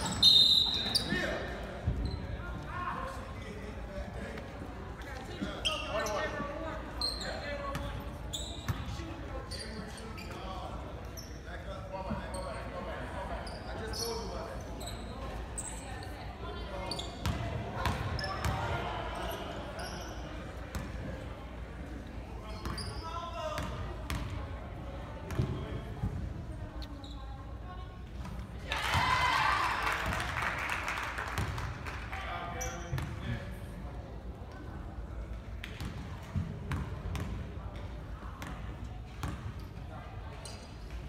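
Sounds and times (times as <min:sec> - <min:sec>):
voices chattering in echoing gym: 0:00.0 - 0:41.0.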